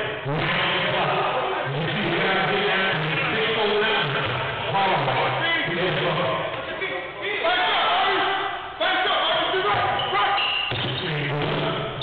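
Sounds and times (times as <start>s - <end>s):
voices in a hall: 0.0s - 12.0s.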